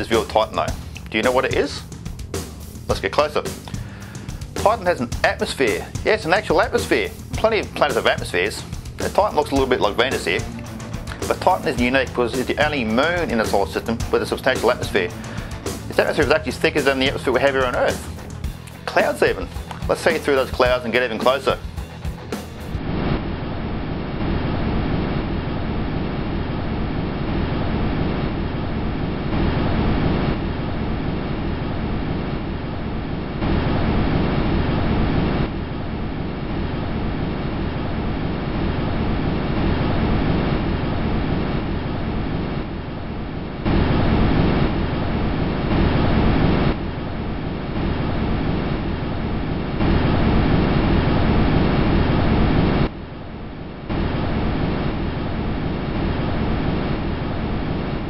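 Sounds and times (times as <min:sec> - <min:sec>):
rushing rumbling noise: 0:00.0 - 0:58.0.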